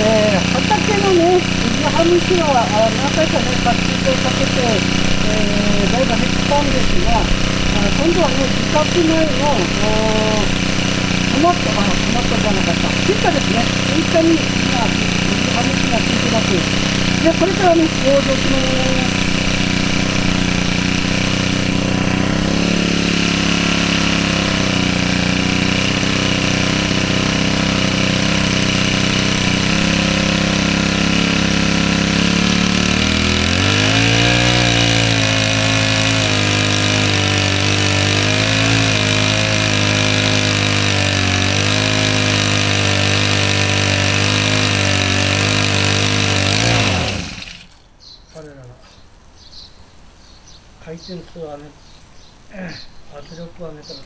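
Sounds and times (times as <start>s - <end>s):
small sprayer engine running: 0.0s - 47.8s.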